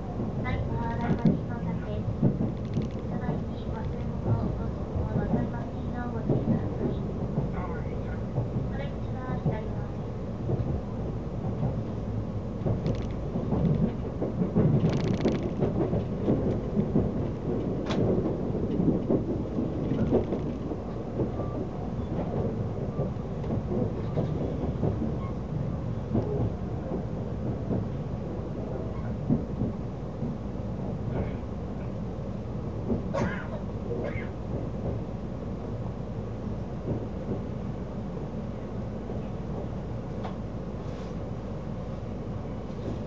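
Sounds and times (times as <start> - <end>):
train wheels rumbling on rail: 0.0 - 43.0
clicks and knocks: 12.7 - 14.0.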